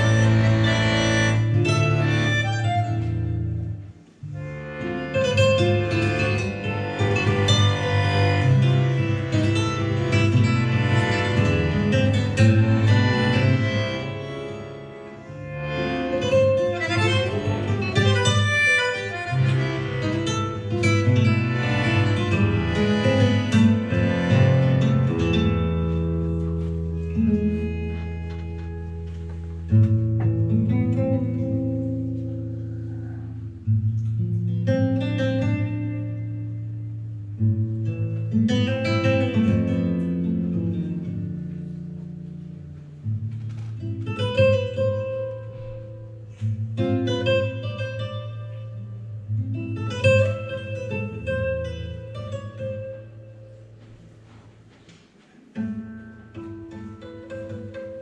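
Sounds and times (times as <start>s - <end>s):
acoustic guitar plucking tango: 0.0s - 58.0s
long held low notes: 32.1s - 33.9s.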